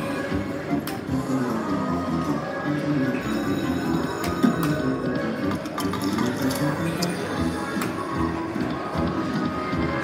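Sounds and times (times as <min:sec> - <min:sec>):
slot machine music and jingles: 0:00.0 - 0:09.3
casino chatter: 0:00.0 - 0:10.0.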